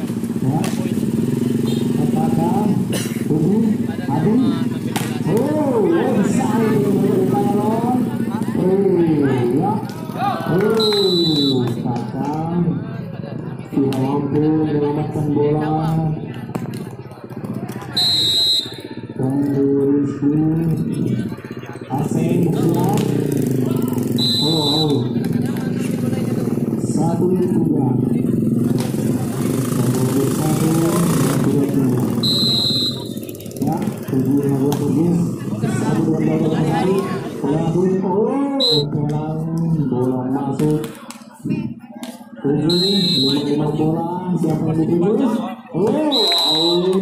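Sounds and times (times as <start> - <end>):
voices of players and onlookers: 0.0 - 47.0
voices shouting drawn-out tones: 4.1 - 11.8, 17.8 - 19.3, 23.3 - 26.8, 31.5 - 34.5, 38.3 - 39.0, 42.5 - 43.8, 45.8 - 47.0
referee whistle blast: 10.8 - 11.7, 18.0 - 19.0, 24.2 - 25.1, 32.2 - 33.2, 38.6 - 38.9, 42.7 - 43.5, 46.1 - 47.0.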